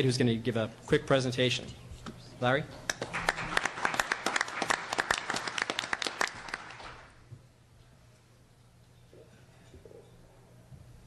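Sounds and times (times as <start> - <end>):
audience applauding: 2.9 - 7.2.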